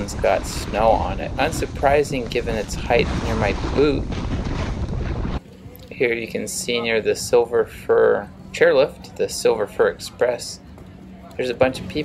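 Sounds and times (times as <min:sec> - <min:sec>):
snowboard sliding through snow: 0:00.0 - 0:05.4
wind rushing over microphone: 0:00.0 - 0:05.4.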